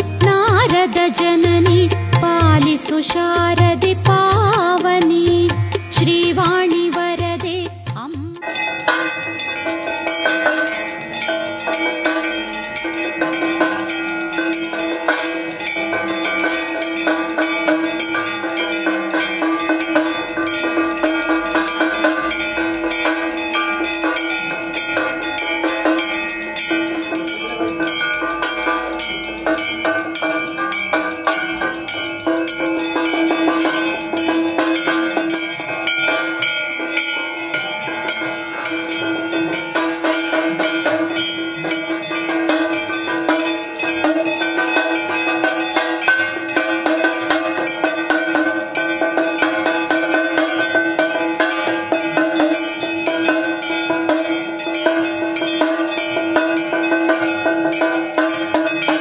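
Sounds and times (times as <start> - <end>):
bells ringing rapidly: 0.0 - 59.0
steady ringing tone: 0.0 - 59.0.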